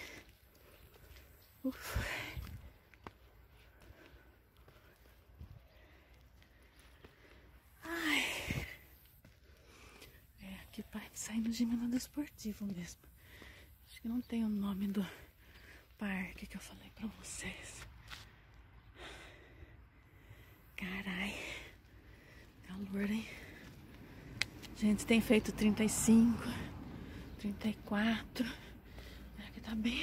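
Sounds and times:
footsteps on rock path: 0.1s - 10.4s, 17.0s - 18.4s, 21.8s - 24.8s.

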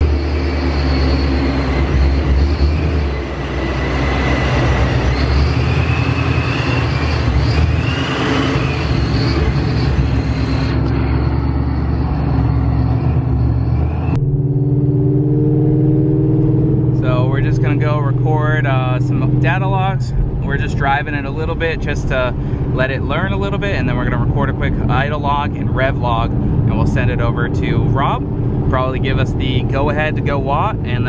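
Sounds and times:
supercharged car engine: 0.0s - 31.0s
supercharger whine: 0.0s - 31.0s.

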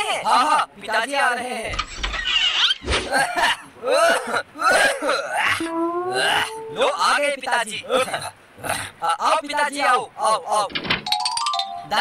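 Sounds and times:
man clearing his throat: 3.1s - 5.4s
long vocal note: 5.6s - 7.0s.

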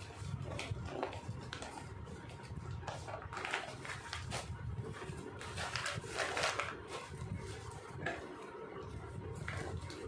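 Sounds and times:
plastic sack rustling: 0.0s - 8.3s.

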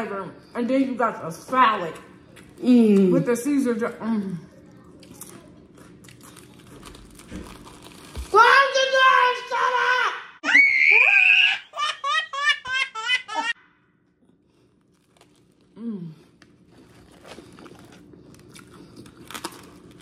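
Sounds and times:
chewing crusty sandwich: 4.6s - 8.3s, 14.2s - 20.0s
baby laughing: 11.1s - 13.6s.

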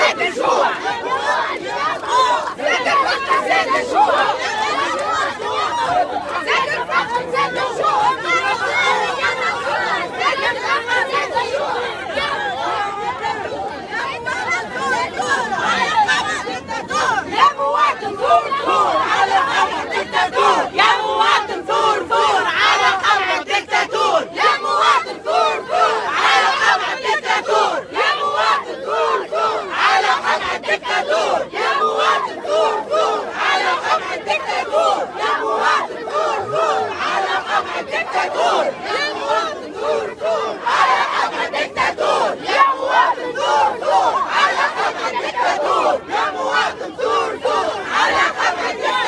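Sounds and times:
crowd shouting slogans: 0.0s - 49.0s.

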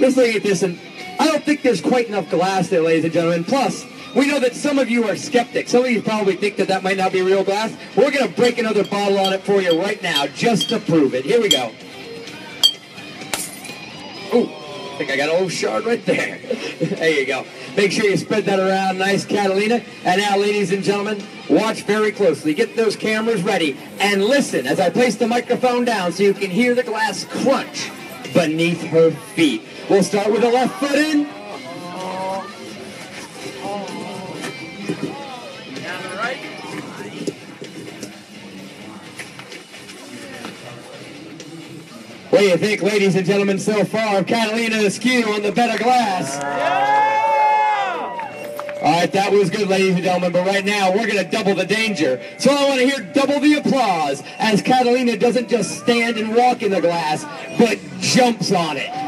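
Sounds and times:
background music: 0.0s - 59.0s
crowd voices: 0.0s - 59.0s
glass bottle clinking on glass: 8.8s - 10.9s, 12.6s - 13.8s.

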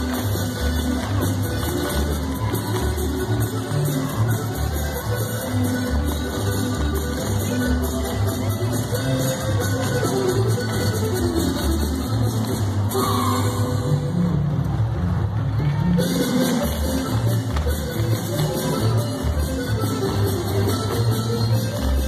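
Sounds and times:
loud polka music: 0.0s - 22.0s.

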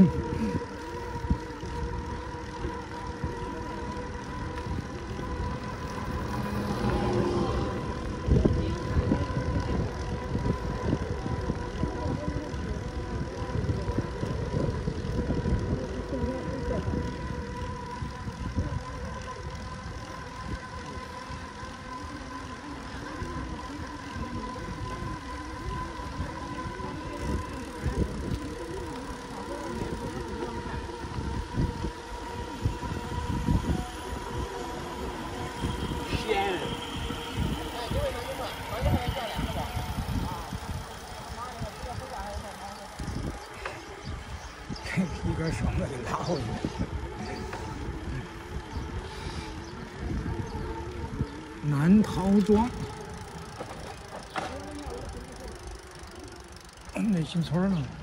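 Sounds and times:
thin steady tone: 0.0s - 58.0s
tyre noise on road: 0.0s - 58.0s
wind buffeting microphone: 0.0s - 58.0s.

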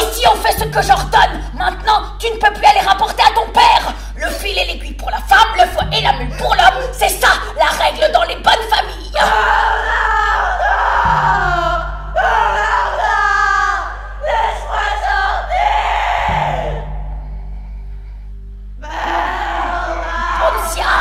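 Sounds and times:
women singing a chant: 0.0s - 17.0s, 19.7s - 21.0s
steady low hum: 0.0s - 21.0s.

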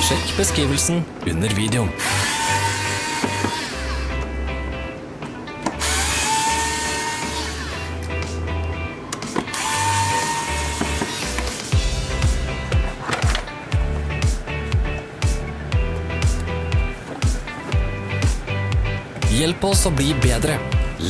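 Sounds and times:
background music with beat: 2.1s - 21.0s.

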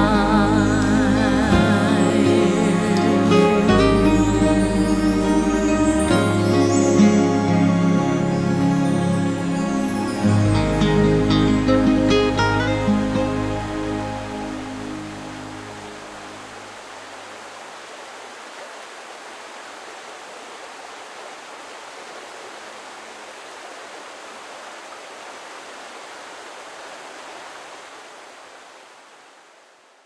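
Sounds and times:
song music: 0.0s - 16.3s
river rushing over rapids: 0.0s - 30.0s.

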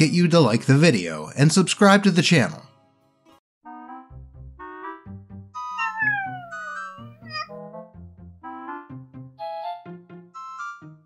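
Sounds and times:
background music: 2.8s - 11.0s
cat meowing: 5.6s - 7.5s.

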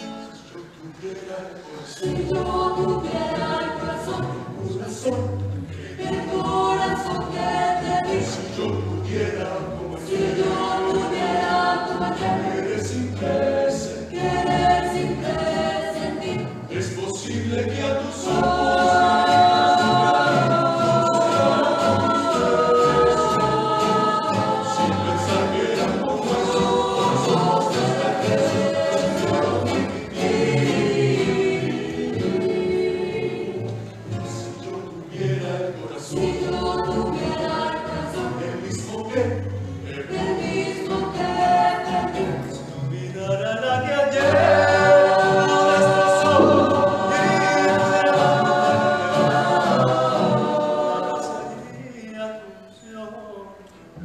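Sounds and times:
strummed guitars: 0.0s - 51.6s
mixed choir singing in harmony: 0.0s - 54.0s
plucked double bass: 44.3s - 49.9s.

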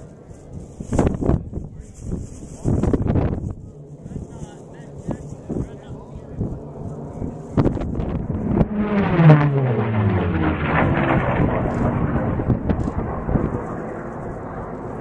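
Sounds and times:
propeller plane flying past: 3.4s - 15.0s.

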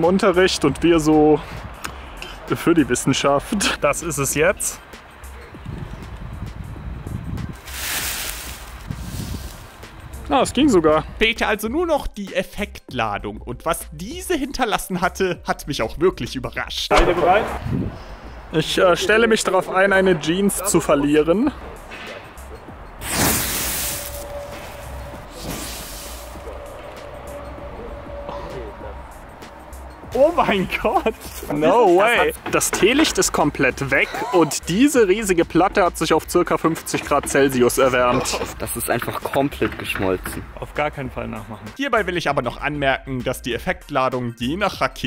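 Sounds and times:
firework rushing whoosh: 7.6s - 9.8s, 23.0s - 27.0s.

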